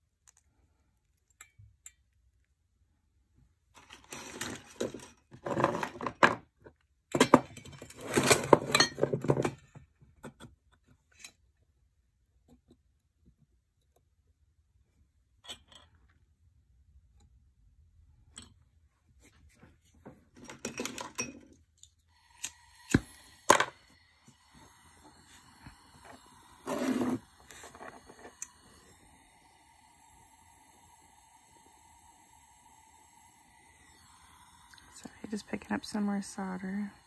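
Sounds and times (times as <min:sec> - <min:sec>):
soldering torch hissing: 0:22.0 - 0:37.0.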